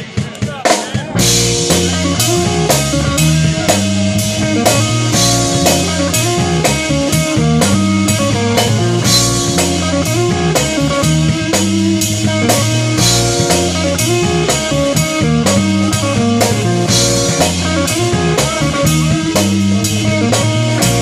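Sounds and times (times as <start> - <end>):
rock band playing: 0.0 - 21.0.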